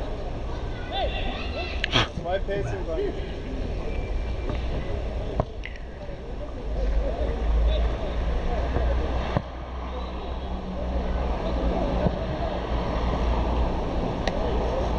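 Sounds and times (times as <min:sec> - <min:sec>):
faint voices: 0:00.0 - 0:14.9.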